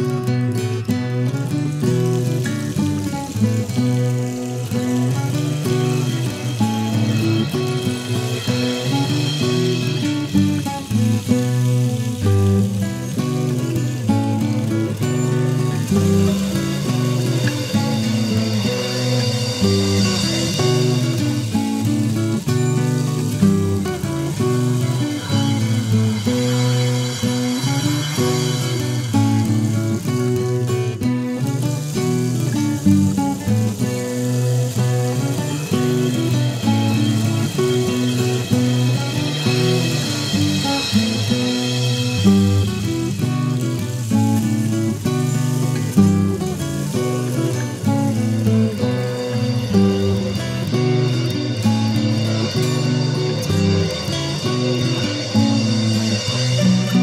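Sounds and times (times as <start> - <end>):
instrumental plucked guitar music: 0.0 - 57.0.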